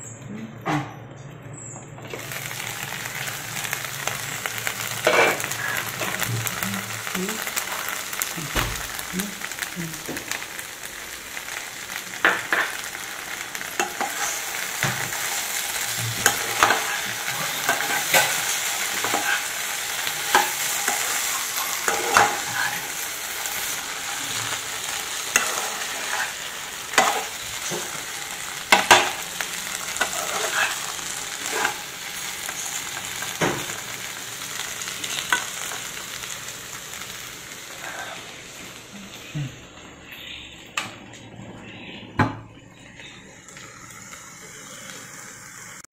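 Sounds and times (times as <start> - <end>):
eggplant sizzling in oil: 2.1 - 40.0, 42.8 - 45.9.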